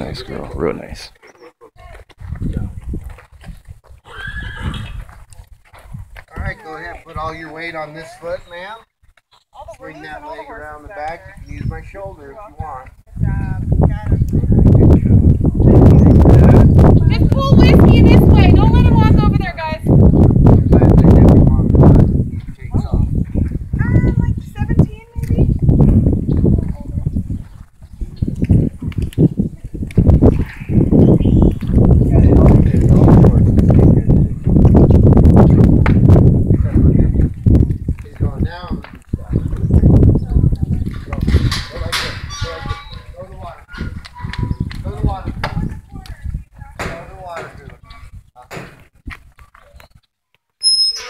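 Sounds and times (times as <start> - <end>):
microphone handling rumble: 2.0 - 6.6, 12.6 - 49.4
horse whinnying: 4.0 - 5.1
people talking indistinctly: 6.3 - 35.0, 36.4 - 48.8
low rumbling thuds: 29.9 - 42.3.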